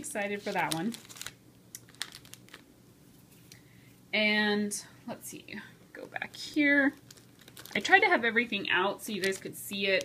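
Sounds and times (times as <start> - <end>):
cellophane wrapper crinkling: 0.1 - 2.8, 6.3 - 10.0.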